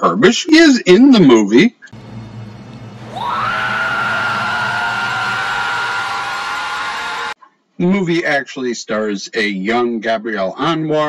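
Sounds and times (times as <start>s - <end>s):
low dark music drone: 1.9s - 5.7s
woman screaming: 3.1s - 7.4s.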